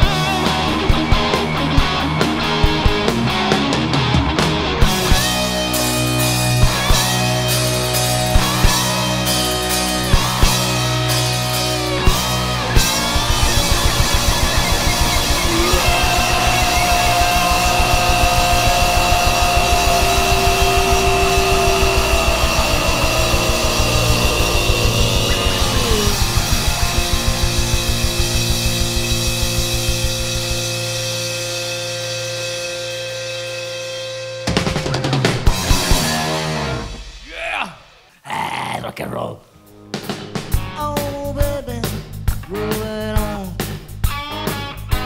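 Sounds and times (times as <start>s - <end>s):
rapid bass drum beat: 0.0s - 31.2s, 40.3s - 44.2s.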